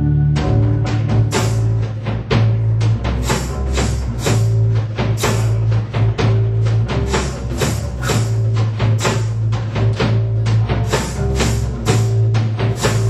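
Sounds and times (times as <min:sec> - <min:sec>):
held notes: 0:00.0 - 0:09.6
drums beating: 0:00.0 - 0:13.0
heavy bass line: 0:00.0 - 0:13.0.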